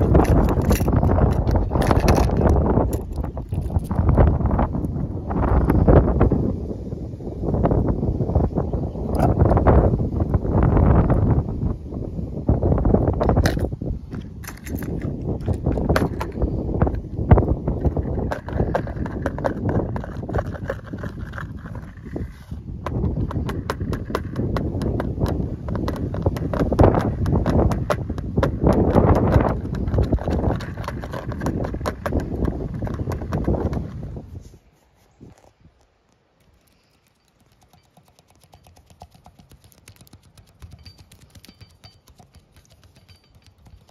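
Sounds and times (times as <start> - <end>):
plastic lures clattering: 0.0 - 4.2.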